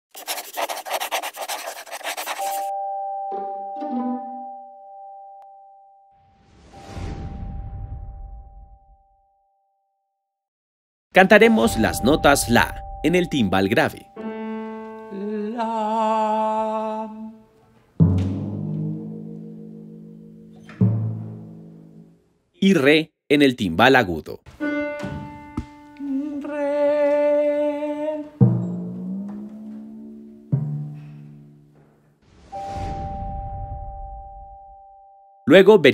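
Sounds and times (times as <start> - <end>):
struck notes: 11.2 - 15.2, 24.5 - 27.3
held chime-like tones: 11.4 - 14.2
timpani strokes: 28.4 - 31.5.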